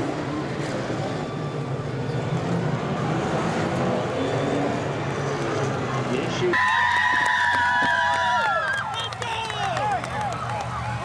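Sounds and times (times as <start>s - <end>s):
racing car engines droning: 0.0s - 11.0s.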